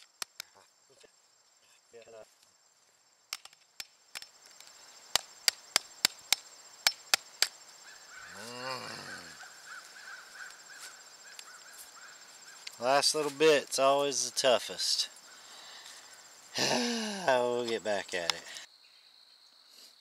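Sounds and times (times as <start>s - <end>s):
short low groan: 8.3s - 9.4s.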